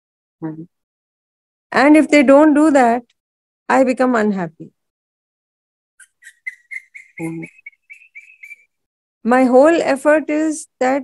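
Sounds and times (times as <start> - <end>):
bird chirping: 6.0 - 8.8.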